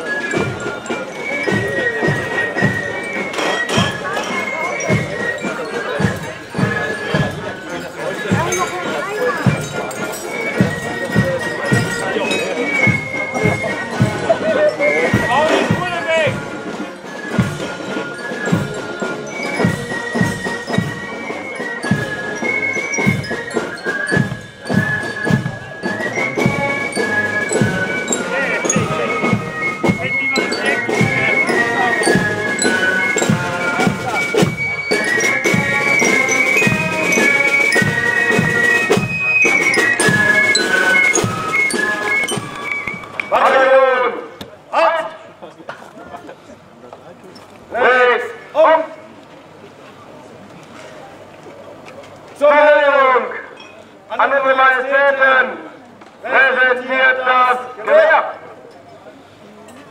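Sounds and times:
high flutes melody: 0:00.0 - 0:44.5
marching lyres: 0:00.0 - 0:59.9
snare drums beat: 0:21.8 - 0:43.1.

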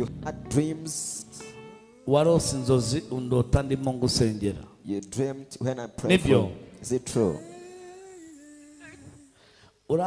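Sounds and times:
woman humming: 0:07.2 - 0:09.4.

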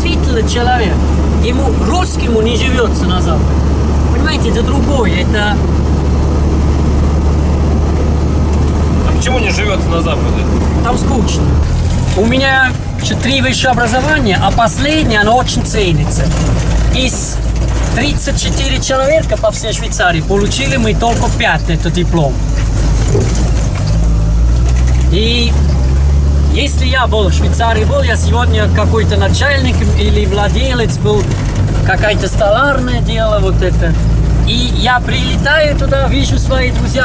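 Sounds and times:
vehicle engine drone inside cab: 0:00.0 - 0:37.0.

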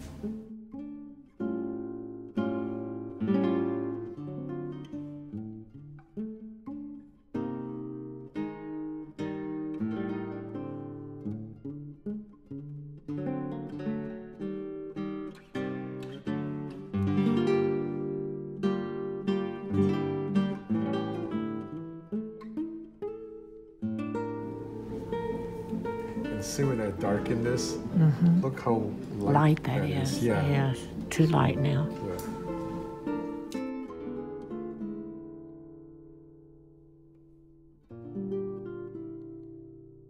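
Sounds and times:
acoustic guitar picking: 0:00.0 - 0:40.0.

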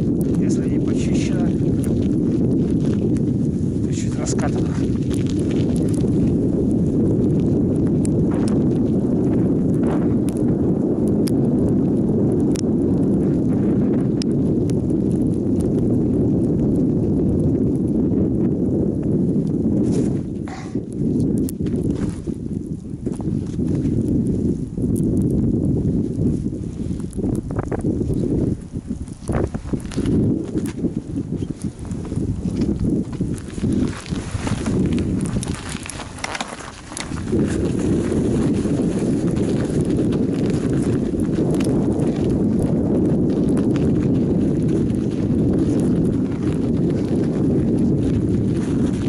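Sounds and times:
bike clicks and rattles: 0:00.0 - 0:11.7, 0:28.9 - 0:49.0
bicycle tyres rolling over snow: 0:00.0 - 0:49.0.

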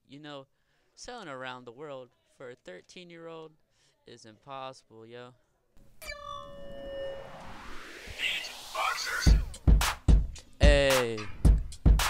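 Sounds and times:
bell-like hit: 0:06.0 - 0:07.7
rising hiss: 0:06.8 - 0:09.4.

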